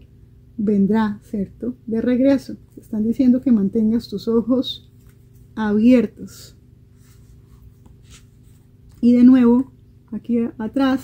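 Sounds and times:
paper pages rustling: 4.8 - 5.6, 7.0 - 9.0.

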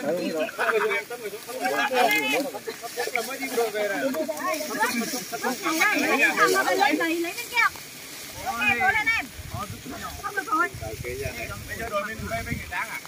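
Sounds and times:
faint hiss: 0.0 - 13.0
people talking and calling out: 0.0 - 13.0.

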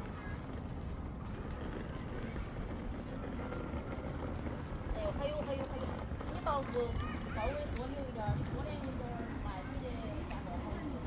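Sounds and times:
people chattering: 0.0 - 11.0
steady low rumble: 0.0 - 11.0.

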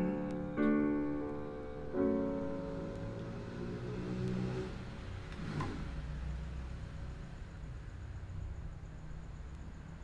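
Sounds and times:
piano chord: 0.0 - 4.0.

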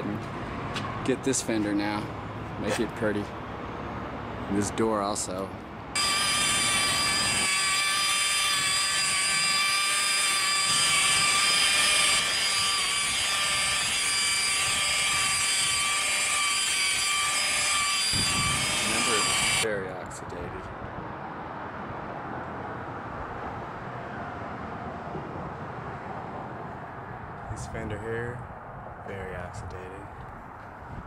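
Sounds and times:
rotary polisher whining: 6.0 - 19.7.

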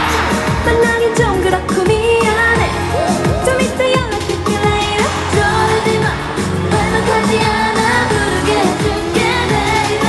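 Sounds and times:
pop backing track with steady beat: 0.0 - 10.0
female group singing: 4.5 - 10.0.

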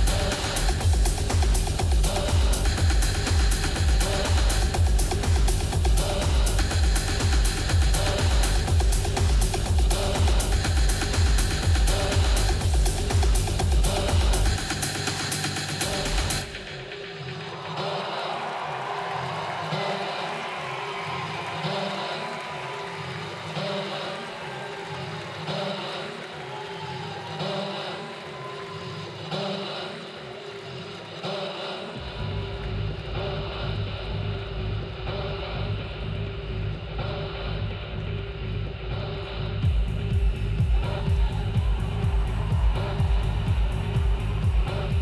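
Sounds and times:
deep bass line: 0.0 - 15.1, 32.0 - 45.0
hi-hats: 0.0 - 18.5.

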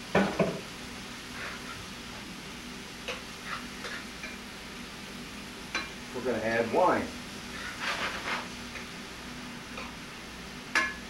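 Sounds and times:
shrimp sizzling in a skillet: 0.0 - 11.0
utensil scraping a pan: 1.3 - 1.8, 3.4 - 4.4, 7.5 - 8.6
metal clink on a pan: 10.8 - 11.0.

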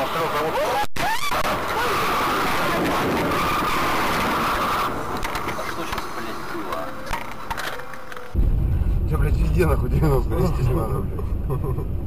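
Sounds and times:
car tyres squealing: 0.0 - 8.1
road noise: 0.0 - 12.0.

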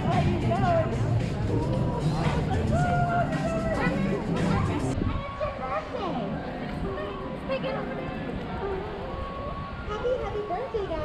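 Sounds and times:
faint music: 0.0 - 11.0
people talking: 0.0 - 11.0.

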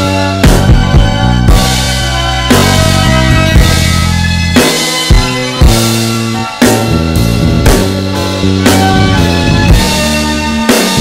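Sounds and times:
deep bass line: 0.0 - 11.0
instrumental backing track: 0.0 - 11.0
slow drum beat: 0.0 - 11.0.

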